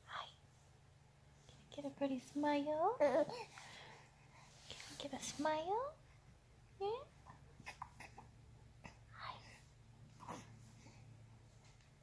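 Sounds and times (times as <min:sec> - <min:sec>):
low steady hum: 0:00.0 - 0:12.0
faint breaths: 0:03.0 - 0:06.4, 0:07.3 - 0:12.0.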